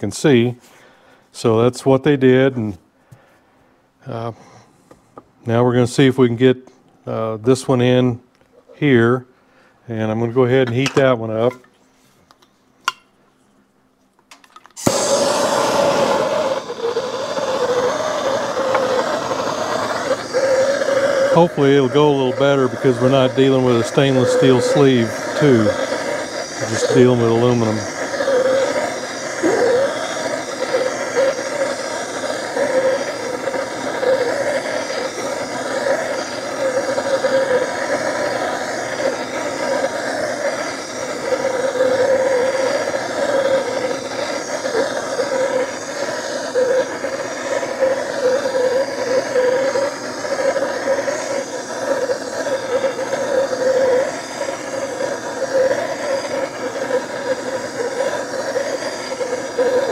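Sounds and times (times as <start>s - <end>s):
gas torch hissing: 14.8s - 59.9s.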